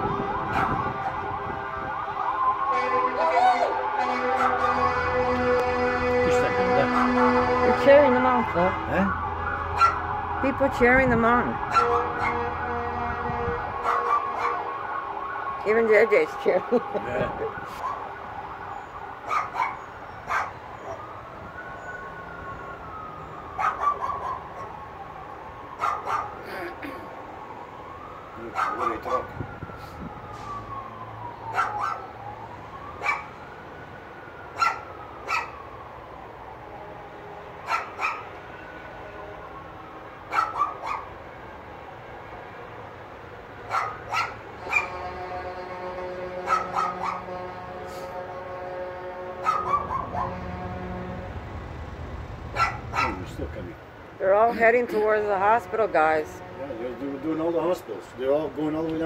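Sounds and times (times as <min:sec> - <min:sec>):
truck engine rumble: 0:00.0 - 0:31.3
siren wailing: 0:00.0 - 0:53.4
truck horn blast: 0:02.7 - 0:08.8, 0:11.8 - 0:14.7, 0:39.0 - 0:39.6, 0:44.6 - 0:51.5.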